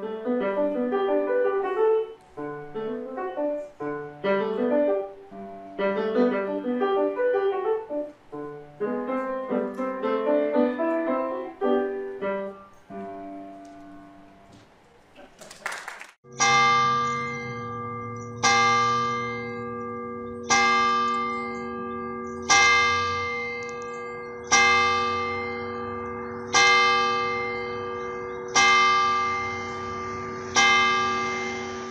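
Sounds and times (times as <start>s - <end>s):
church bell tolling: 12.8s - 14.6s, 16.3s - 31.9s.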